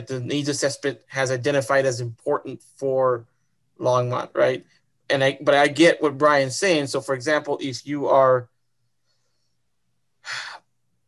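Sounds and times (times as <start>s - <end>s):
man sighing: 10.2s - 10.7s.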